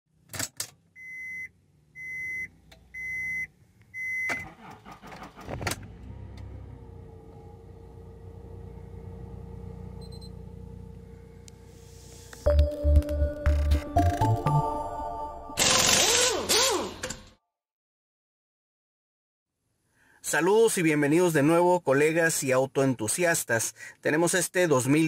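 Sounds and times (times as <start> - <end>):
steady low hum: 6.0 - 12.5.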